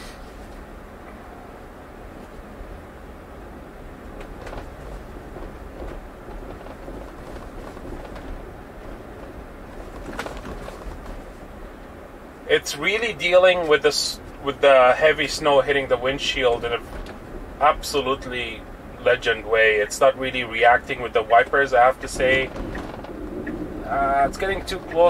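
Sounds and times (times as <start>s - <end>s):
tyres on packed snow: 12.5s - 25.0s.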